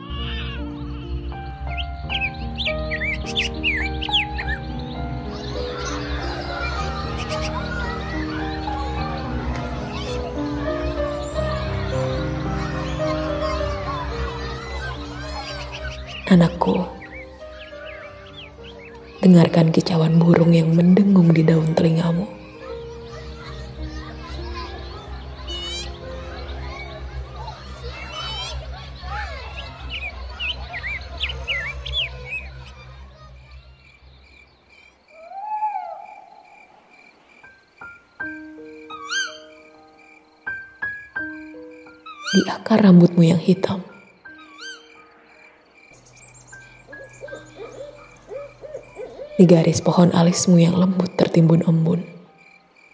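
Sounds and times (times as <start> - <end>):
soft slow background music: 0.0 - 52.9
faint high chirps: 0.1 - 52.9
faint small high calls: 22.4 - 42.7, 43.8 - 49.4
short hooting calls: 38.2 - 40.0.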